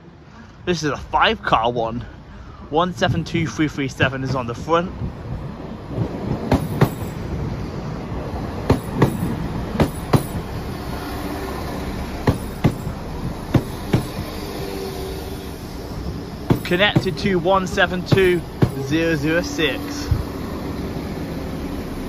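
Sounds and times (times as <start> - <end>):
train low rumble: 0.0 - 22.0
wheels clicking over rail joints: 5.9 - 7.4, 8.5 - 20.8.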